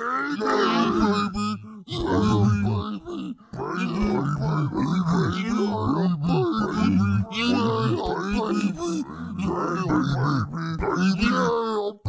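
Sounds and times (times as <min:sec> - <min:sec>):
man grunting and groaning: 0:00.0 - 0:12.0.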